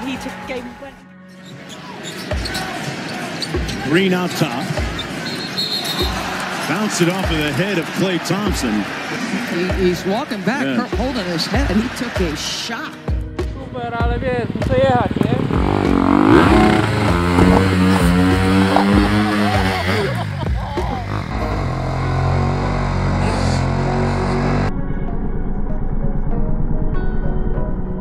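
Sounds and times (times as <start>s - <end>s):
dirt bike engine revving: 14.4s - 24.7s.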